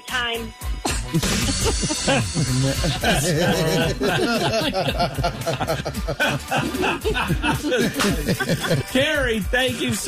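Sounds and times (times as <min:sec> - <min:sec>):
people laughing: 0:01.0 - 0:10.0.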